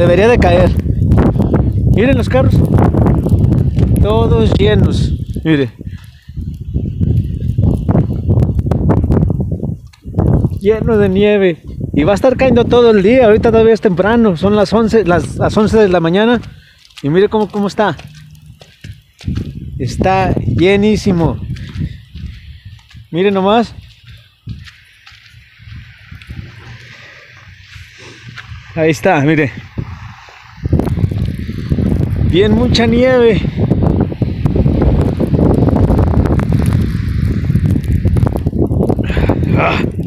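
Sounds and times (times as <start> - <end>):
wind buffeting microphone: 0.0 - 40.0
hiss: 24.2 - 31.7.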